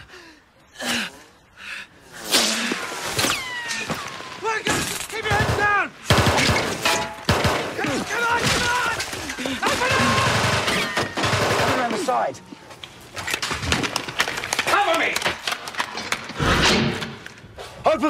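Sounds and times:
rifle shots: 0:05.3 - 0:07.9
men shouting: 0:07.8 - 0:10.6.

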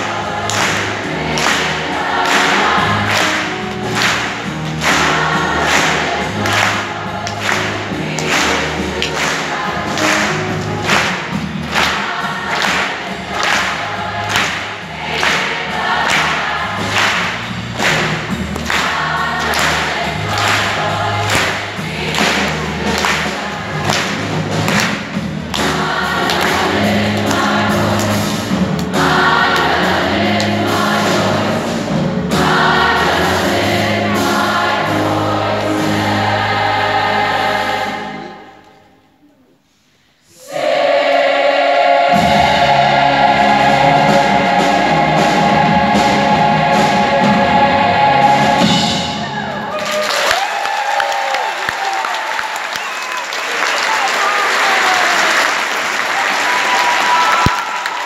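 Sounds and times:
youth choir singing: 0:00.0 - 0:24.8, 0:25.5 - 0:38.9, 0:40.2 - 0:49.8
drum kit: 0:00.0 - 0:38.2, 0:41.8 - 0:50.0
piano: 0:00.0 - 0:39.4, 0:40.5 - 0:58.0
audience applause: 0:00.5 - 0:25.0, 0:49.4 - 0:58.0.

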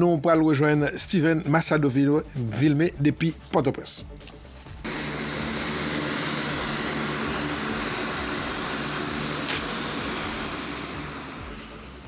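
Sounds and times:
turboprop plane engines running: 0:04.8 - 0:12.0.

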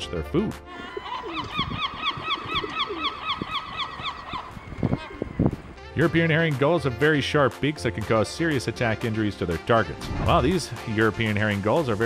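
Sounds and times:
gull long call: 0:00.7 - 0:05.8.

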